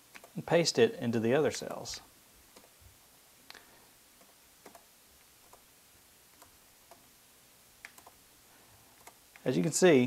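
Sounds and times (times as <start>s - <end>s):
computer mouse clicks: 0.1s - 0.4s, 2.5s - 2.8s, 4.2s - 5.6s, 6.3s - 7.1s, 7.8s - 8.2s, 9.0s - 9.5s.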